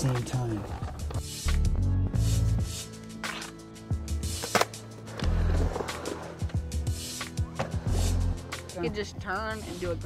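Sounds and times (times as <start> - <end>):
skateboard rolling and clacking: 4.4 - 6.6.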